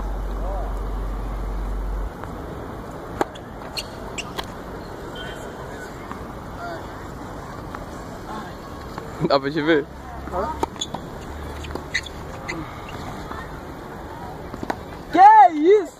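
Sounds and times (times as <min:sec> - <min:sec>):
faint distant voices: 0:03.0 - 0:15.9
tennis ball bouncing on hard court: 0:03.2 - 0:04.6, 0:10.3 - 0:13.0
tennis ball struck by rackets: 0:03.2 - 0:04.6, 0:10.5 - 0:13.0.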